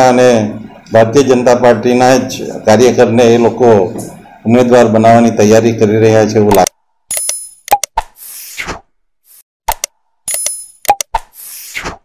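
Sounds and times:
short swishing rush: 8.2 - 9.4, 11.4 - 12.0
quick clicks: 9.7 - 11.4.

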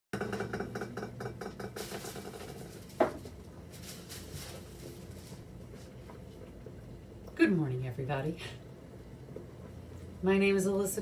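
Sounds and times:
kitchenware rattling: 0.2 - 3.3.

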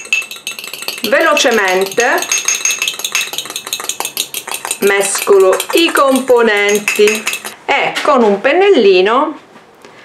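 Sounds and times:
utensil whisking egg in bowl: 0.0 - 7.6.

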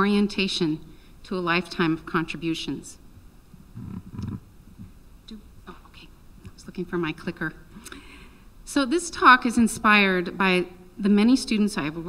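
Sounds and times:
woman muttering: 3.8 - 4.4.

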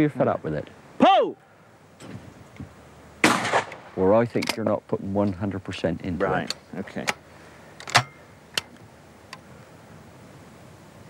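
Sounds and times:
shotgun metallic clicks: 7.8 - 9.4.

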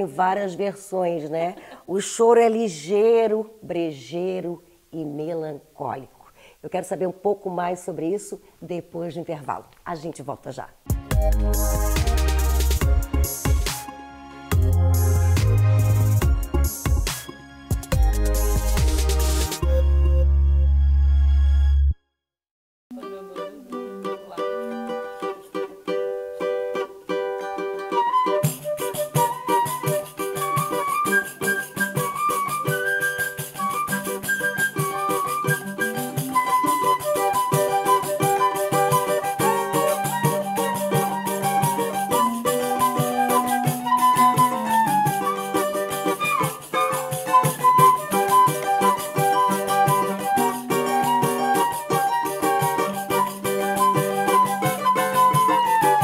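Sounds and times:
cavaquinho playing: 10.8 - 20.4, 22.9 - 56.0
flute and clarinet melody: 24.1 - 56.0.

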